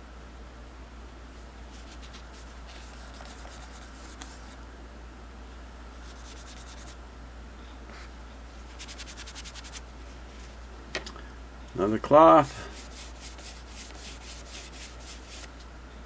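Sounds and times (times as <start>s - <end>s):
cloth rubbing on metal: 1.7s - 4.6s, 6.0s - 7.0s, 8.7s - 10.6s, 12.3s - 15.6s.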